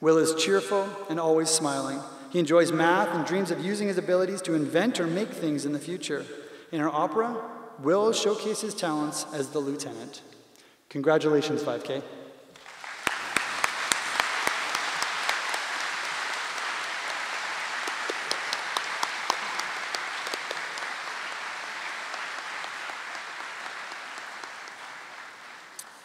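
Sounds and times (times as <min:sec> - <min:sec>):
sharp individual claps: 0:12.5 - 0:26.0
audience applause: 0:12.6 - 0:26.0.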